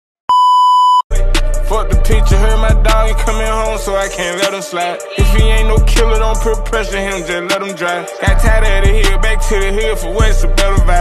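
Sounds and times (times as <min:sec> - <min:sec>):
high test-tone beep: 0:00.3 - 0:01.0
hip hop beat with heavy bass: 0:01.1 - 0:11.0.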